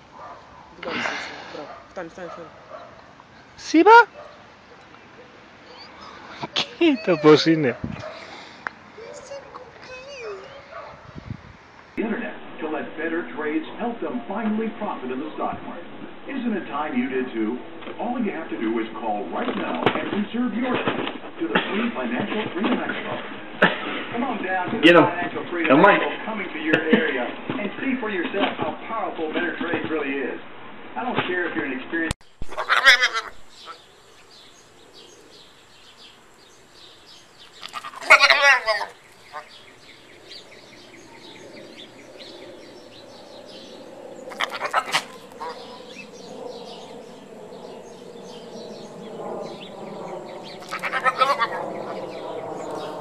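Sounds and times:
small birds chirping: 0.1 - 12.0, 32.2 - 53.0
dog whining: 5.6 - 8.2, 44.3 - 46.0
goat bleating: 6.5 - 7.6, 32.5 - 33.4, 37.6 - 39.0, 44.3 - 45.2, 50.6 - 51.6.

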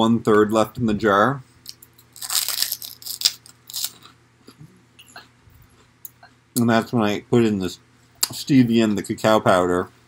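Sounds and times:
crunching and chewing: 1.6 - 4.6.

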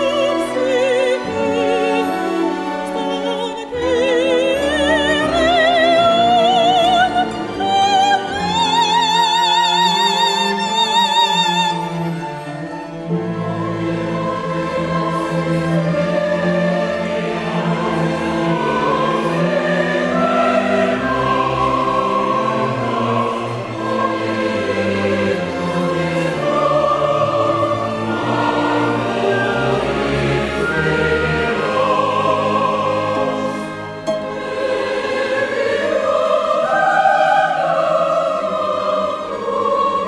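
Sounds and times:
choir singing: 0.0 - 40.0
orchestra playing: 0.0 - 40.0.

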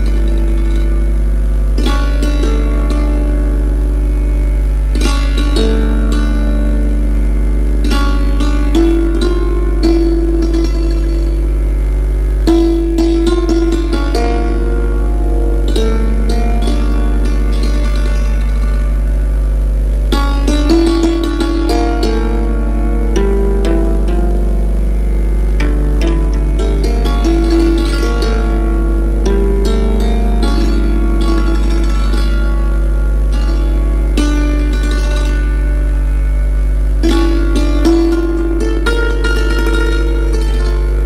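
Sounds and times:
hammered dulcimer melody: 0.0 - 4.0, 4.9 - 36.0, 37.0 - 41.0.

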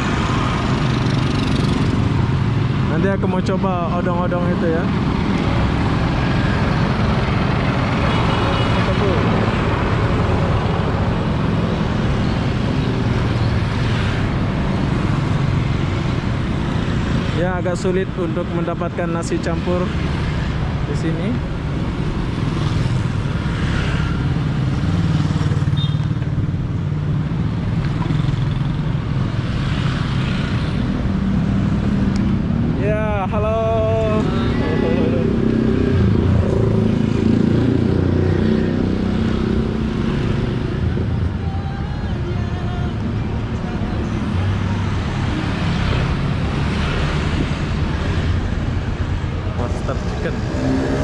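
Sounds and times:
motorcycle engines rumbling: 0.0 - 51.0.

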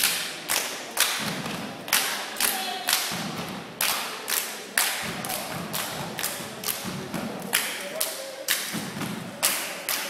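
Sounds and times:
echoing stomps and claps: 0.0 - 10.0.

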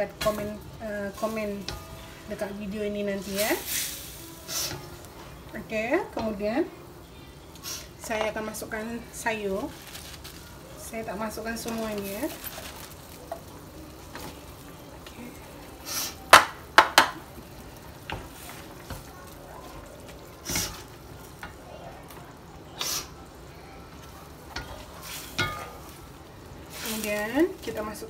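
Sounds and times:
spatula stirring in a wok: 0.0 - 6.5, 17.3 - 28.0
faint hiss from pot: 0.3 - 5.5, 7.3 - 12.9, 13.5 - 16.4, 20.2 - 21.2, 22.5 - 28.0.

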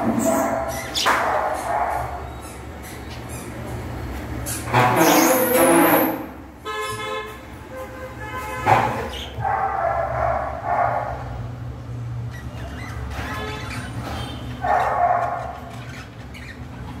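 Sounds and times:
budgerigars chirping: 0.3 - 3.8, 12.3 - 17.0
loud animal calls: 12.3 - 17.0.

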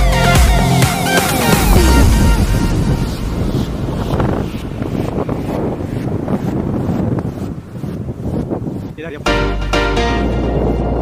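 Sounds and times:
wind buffeting microphone: 1.0 - 11.0.

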